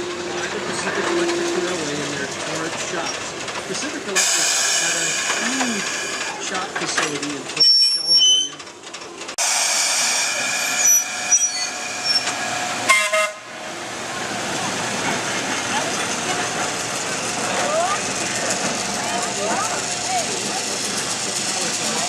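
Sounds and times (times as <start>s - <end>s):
electric locomotive rolling past: 0.0s - 22.0s
locomotive horn toot: 10.5s - 13.6s.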